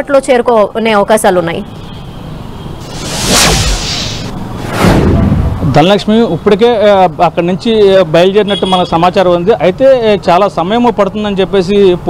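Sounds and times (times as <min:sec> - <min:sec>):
outdoor background noise: 0:00.0 - 0:12.0
rising whoosh: 0:02.8 - 0:06.0.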